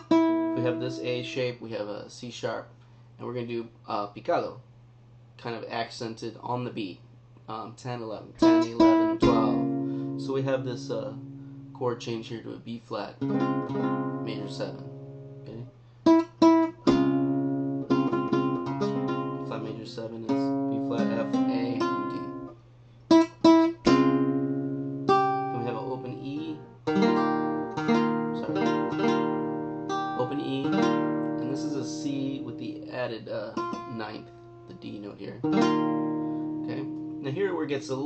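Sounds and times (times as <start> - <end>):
flamenco guitar playing: 0.0 - 1.4, 8.4 - 11.8, 13.2 - 22.5, 23.1 - 38.0
accented guitar chord strikes: 8.4 - 11.8, 13.3 - 32.9, 35.4 - 37.4.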